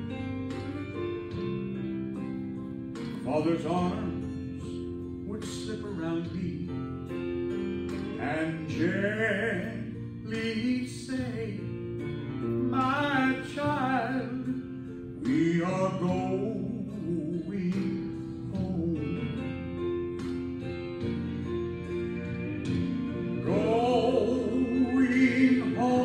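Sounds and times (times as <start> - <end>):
instrumental backing: 0.0 - 26.0
man singing gospel song: 3.2 - 6.8, 8.2 - 11.8, 12.6 - 14.6, 15.2 - 19.5, 23.4 - 26.0.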